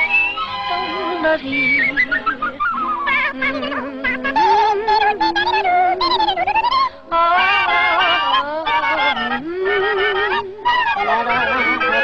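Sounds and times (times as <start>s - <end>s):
high-pitched cartoon voices chattering: 1.8s - 6.9s.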